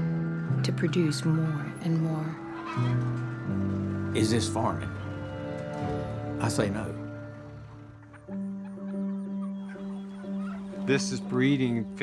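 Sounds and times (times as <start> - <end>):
held low musical note: 0.0 - 8.6.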